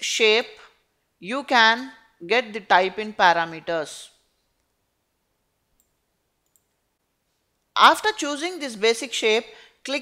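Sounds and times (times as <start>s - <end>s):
computer mouse clicks: 5.8s - 6.8s.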